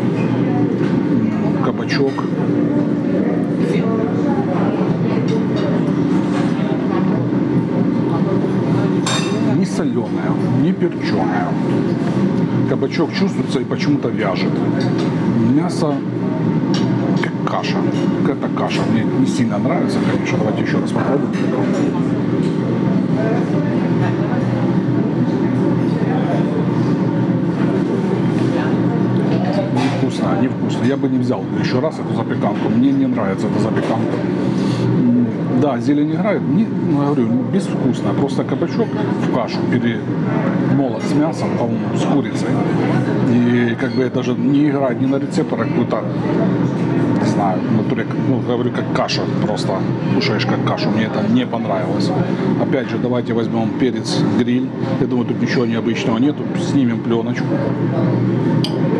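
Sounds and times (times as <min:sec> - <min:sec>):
cafe room noise hum: 0:00.0 - 0:58.9
faint voices: 0:00.0 - 0:58.9.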